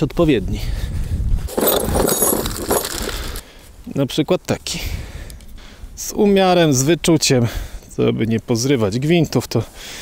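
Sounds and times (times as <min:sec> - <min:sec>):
metal keys clinking and rattling: 0:01.5 - 0:03.4.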